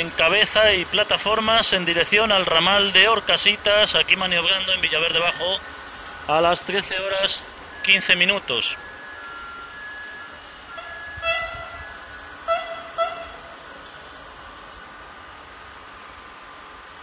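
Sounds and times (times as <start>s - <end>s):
steady background hum: 0.0s - 17.0s
train horn blasts: 10.6s - 13.6s.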